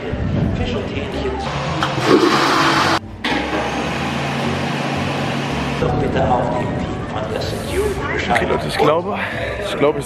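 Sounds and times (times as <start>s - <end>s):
toilet flushing: 1.8s - 4.4s.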